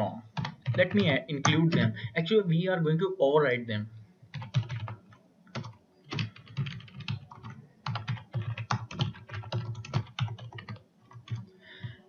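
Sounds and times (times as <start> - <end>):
computer keyboard typing: 0.3 - 2.1, 4.3 - 12.0.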